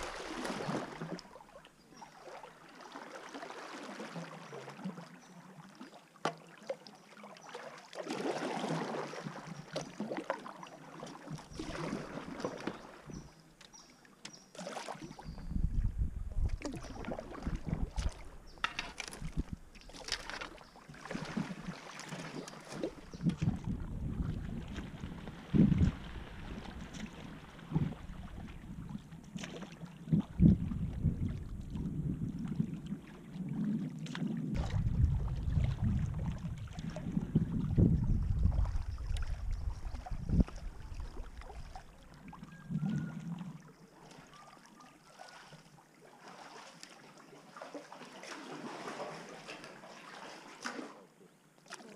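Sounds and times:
paddle blades splashing: 0:00.0 - 0:15.5, 0:16.4 - 0:51.9
wind buffeting microphone: 0:15.2 - 0:19.7, 0:23.0 - 0:29.1, 0:30.0 - 0:33.7, 0:34.5 - 0:43.3.

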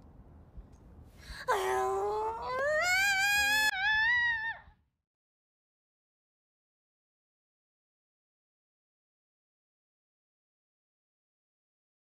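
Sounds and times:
woman wailing: 0:01.5 - 0:04.6.

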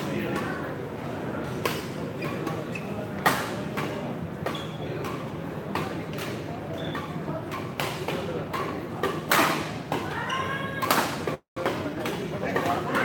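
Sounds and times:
murmur of spectator chatter: 0:00.0 - 0:13.0
rackets hitting shuttlecock: 0:03.2 - 0:13.0.

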